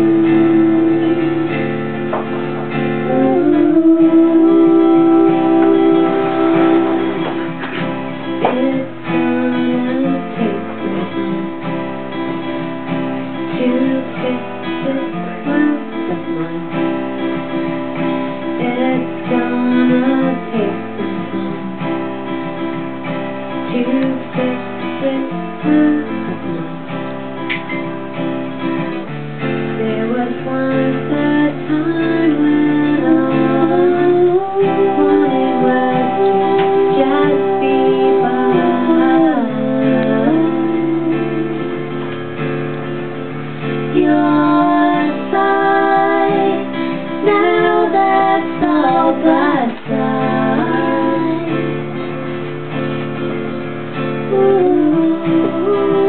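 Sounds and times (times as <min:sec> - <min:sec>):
woman singing: 0:00.0 - 0:22.6, 0:23.5 - 0:27.2, 0:28.7 - 0:42.2, 0:43.8 - 0:52.2, 0:54.2 - 0:56.0
acoustic guitar strumming: 0:00.0 - 0:56.0.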